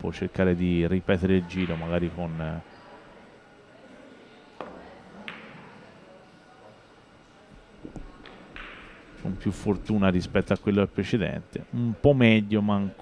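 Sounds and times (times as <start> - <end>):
quiet hall ambience: 0.0 - 13.0
cue striking billiard ball: 8.3 - 9.0.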